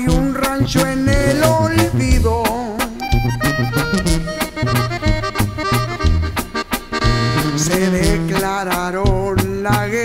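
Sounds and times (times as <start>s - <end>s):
accordion melody: 0.0s - 10.0s
drum beats: 0.0s - 10.0s
tuba bass line: 0.0s - 10.0s.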